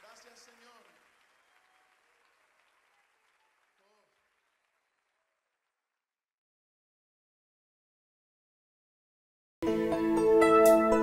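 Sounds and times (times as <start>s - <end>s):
faint audience applause: 0.0s - 6.0s.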